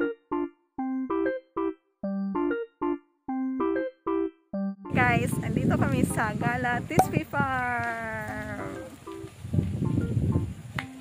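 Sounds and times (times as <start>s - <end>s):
light keyboard music: 0.0s - 7.4s, 8.4s - 11.0s.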